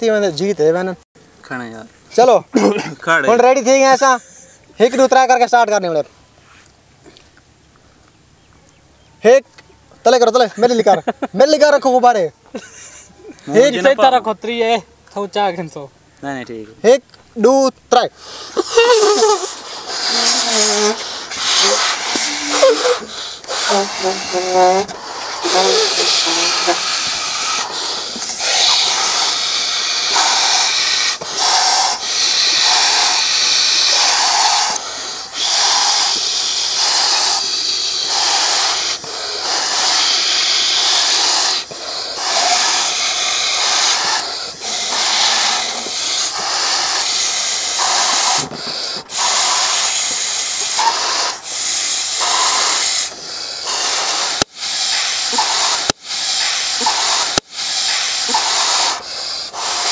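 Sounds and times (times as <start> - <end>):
people blowing up balloons: 18.1 - 59.9.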